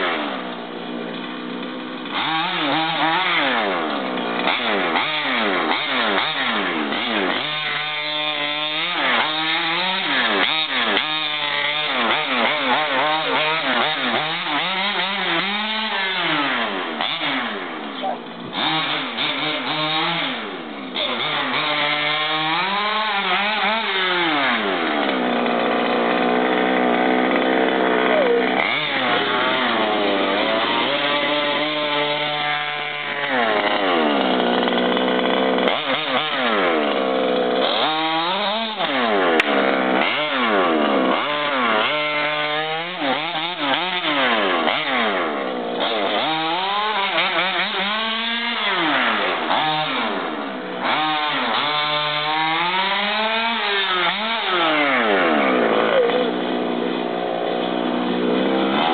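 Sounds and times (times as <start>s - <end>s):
model car engine revving: 0.0s - 58.9s.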